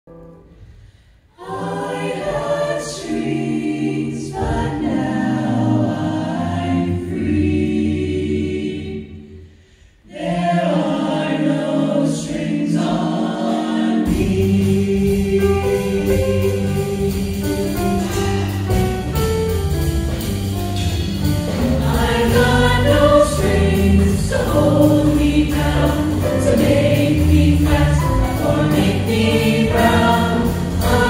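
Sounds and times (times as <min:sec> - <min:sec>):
mixed choir singing: 0:01.3 - 0:19.2, 0:21.4 - 0:31.0.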